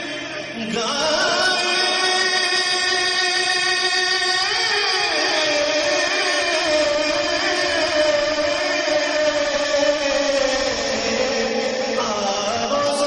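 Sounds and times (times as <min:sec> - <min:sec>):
man singing a long note: 0:00.0 - 0:13.0.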